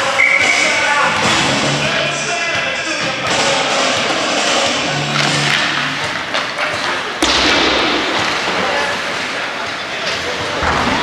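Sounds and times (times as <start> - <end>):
echoing voices: 0.0 - 11.0
loud thud: 7.2 - 8.6.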